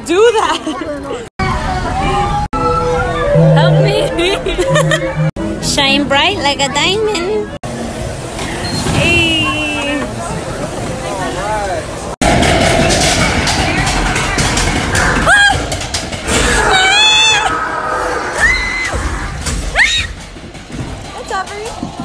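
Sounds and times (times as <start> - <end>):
amusement ride noise and music: 0.0 - 22.0
shrill screams: 16.5 - 19.0.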